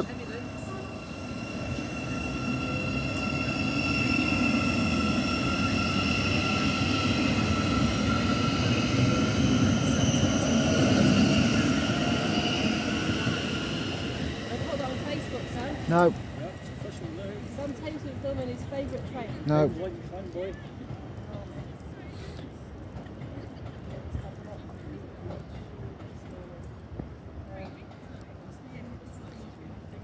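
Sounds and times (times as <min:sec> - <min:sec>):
electric train whine: 0:00.0 - 0:20.2
wheels rumbling on rail: 0:00.0 - 0:30.0.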